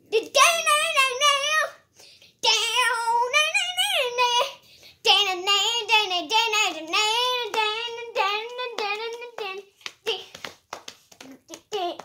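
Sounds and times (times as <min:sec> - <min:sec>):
boy singing: 0:00.0 - 0:10.4, 0:11.2 - 0:12.0.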